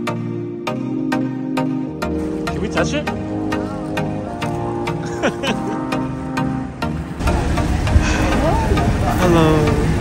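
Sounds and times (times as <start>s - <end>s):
vehicle engine rumbling: 2.2s - 10.0s
people talking: 8.2s - 9.9s.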